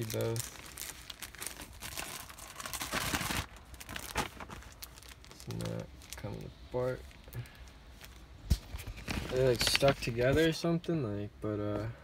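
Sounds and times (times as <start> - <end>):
plastic packet crinkling: 0.0 - 8.2, 8.9 - 10.2.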